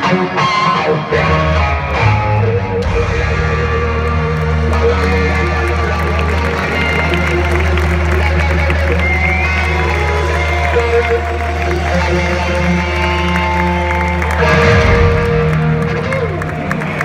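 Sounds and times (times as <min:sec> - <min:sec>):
electric guitar bending notes: 0:00.0 - 0:17.0
rock band through loud pa: 0:00.0 - 0:17.0.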